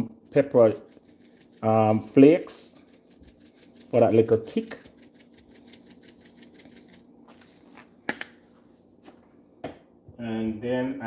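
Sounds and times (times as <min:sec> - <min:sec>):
spice shaker rattling: 0:00.0 - 0:08.0.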